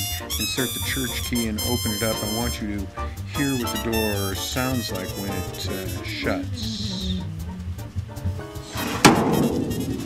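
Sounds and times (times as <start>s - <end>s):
van door slamming: 8.7s - 10.0s.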